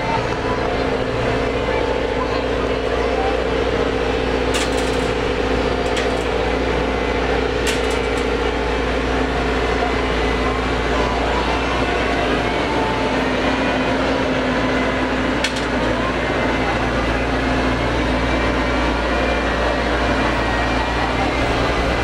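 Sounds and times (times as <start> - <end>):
excavator diesel engine running: 0.0 - 22.0.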